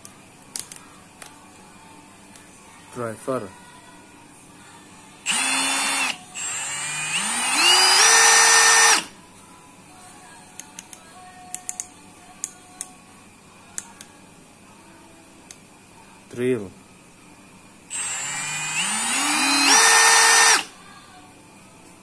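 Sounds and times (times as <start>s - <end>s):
power drill motor whine: 5.2s - 9.1s, 17.9s - 20.7s.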